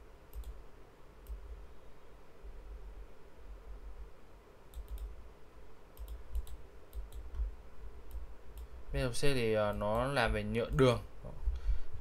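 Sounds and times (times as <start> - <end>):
computer mouse clicking: 0.3 - 0.6, 1.2 - 1.4, 4.7 - 5.2, 6.0 - 8.8.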